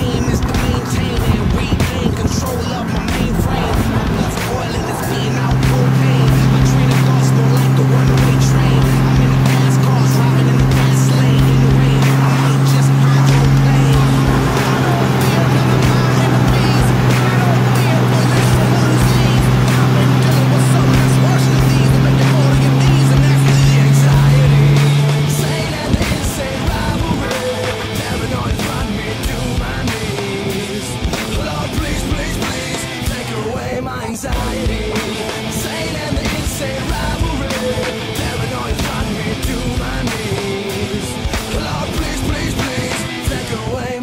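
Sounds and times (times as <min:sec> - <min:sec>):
music playing: 0:00.0 - 0:44.0
pickup truck engine droning: 0:00.0 - 0:44.0.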